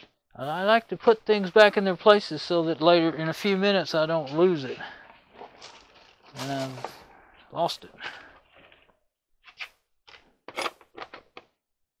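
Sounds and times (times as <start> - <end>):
short scraping handling noises: 5.4 - 7.1.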